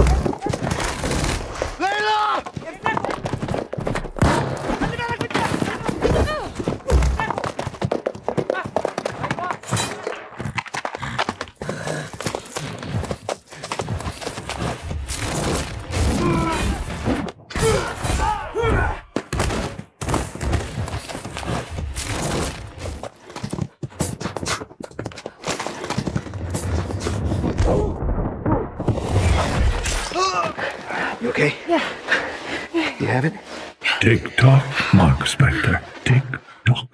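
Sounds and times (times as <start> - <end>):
men grunting and groaning: 16.0 - 19.1, 29.8 - 33.0.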